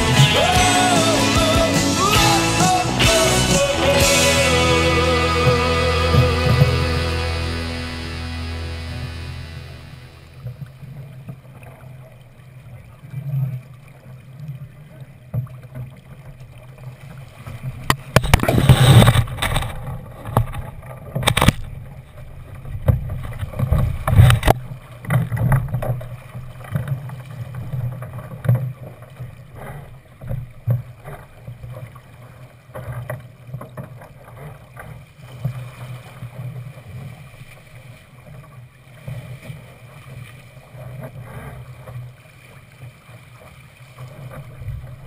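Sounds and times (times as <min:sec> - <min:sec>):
waves knocking against boat: 0:00.0 - 0:10.6
water rushing against boat hull: 0:00.0 - 0:45.0.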